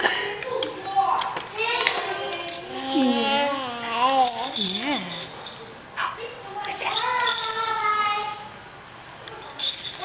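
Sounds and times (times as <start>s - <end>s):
plastic toy rattling: 1.2s - 5.9s, 6.5s - 8.6s, 9.4s - 10.0s
person cooing: 2.8s - 3.8s.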